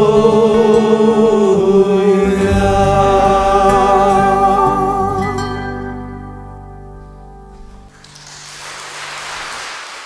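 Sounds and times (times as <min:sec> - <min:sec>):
audience applause: 0:08.0 - 0:10.0.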